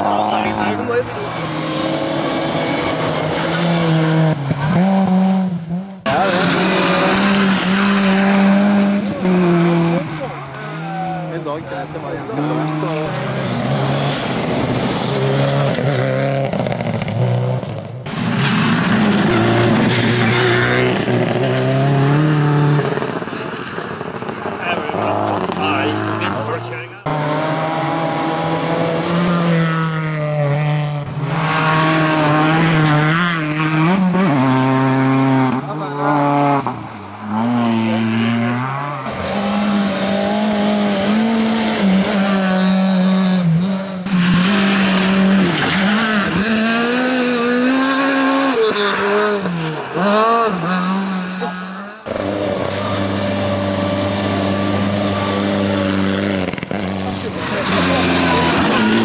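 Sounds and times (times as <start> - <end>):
gravel and tyre noise: 0.0 - 59.0
rally car engine revving: 0.0 - 59.0.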